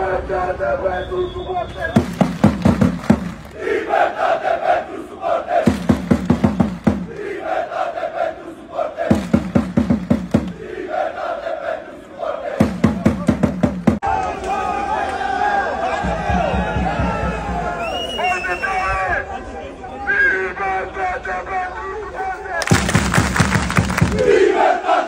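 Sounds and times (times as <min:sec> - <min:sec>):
crowd clapping in unison: 0:02.0 - 0:03.6, 0:05.7 - 0:07.3, 0:09.2 - 0:10.6, 0:22.6 - 0:24.4
crowd chanting in unison: 0:03.1 - 0:13.3, 0:24.0 - 0:25.0.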